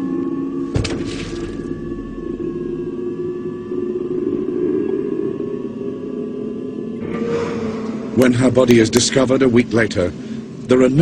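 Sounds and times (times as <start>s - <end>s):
dark ominous drone music: 0.0s - 11.0s.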